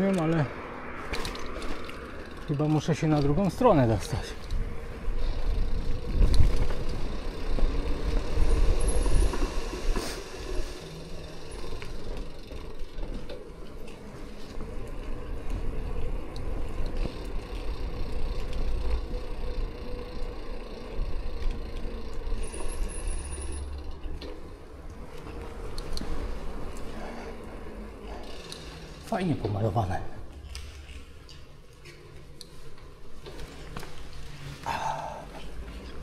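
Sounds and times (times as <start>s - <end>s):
tyres rumbling on road: 0.0s - 30.2s
bike clicks and rattles: 0.0s - 36.0s
wind on camera: 5.5s - 9.9s.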